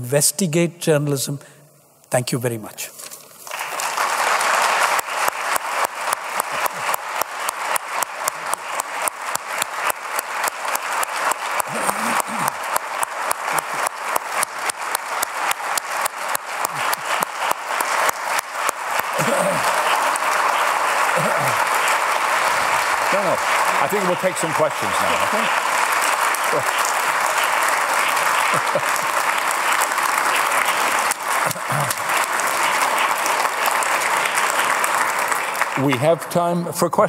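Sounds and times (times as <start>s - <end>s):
audience applauding: 3.4s - 37.0s.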